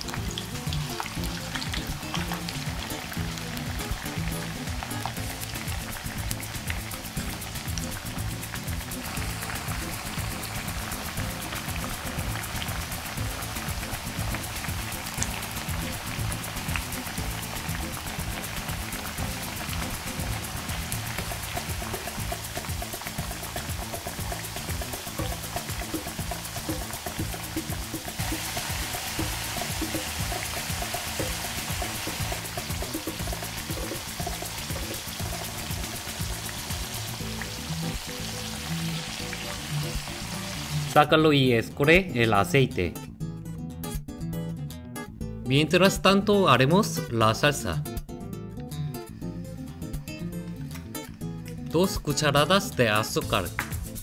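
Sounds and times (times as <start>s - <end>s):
food deep-frying in oil: 0.0s - 41.0s
background music: 0.0s - 54.0s.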